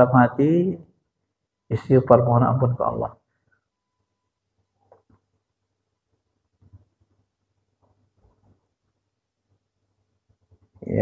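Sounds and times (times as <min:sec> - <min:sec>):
man speaking: 0:00.0 - 0:00.9, 0:01.7 - 0:03.2.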